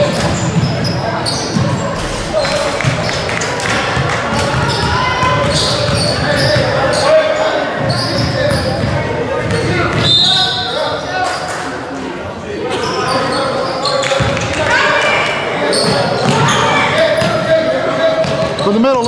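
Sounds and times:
echoing voices: 0:00.0 - 0:10.0.

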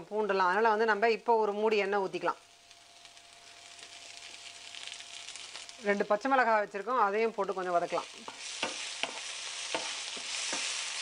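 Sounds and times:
onions sizzling in frying pan: 0:00.0 - 0:11.0.

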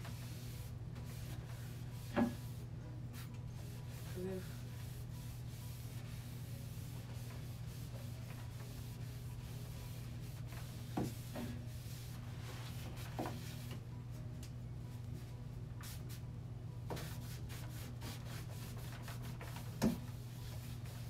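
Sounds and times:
hand wiping wooden shelf: 0:03.2 - 0:13.7.

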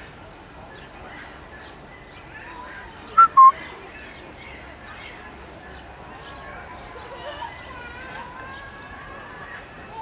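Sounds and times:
faint bird chirping: 0:00.7 - 0:05.2
bird calling two clear notes: 0:03.2 - 0:03.6.

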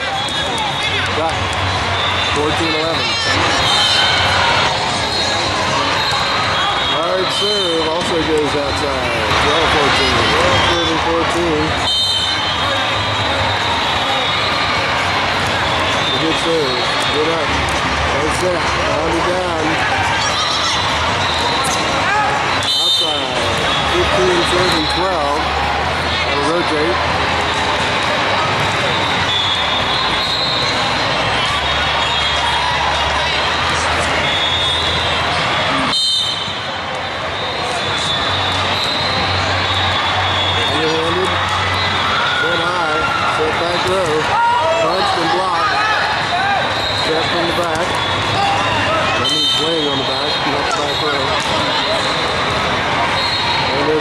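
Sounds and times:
players calling out: 0:00.0 - 0:54.0
reverberant babble of voices: 0:00.0 - 0:54.0.

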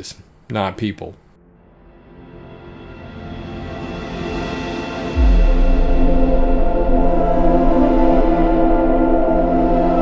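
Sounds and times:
cinematic background music: 0:01.4 - 0:10.0.

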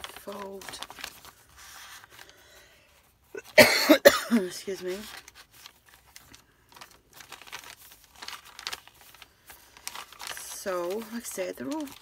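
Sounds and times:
paper pages rustling: 0:00.0 - 0:03.6, 0:04.4 - 0:12.0.

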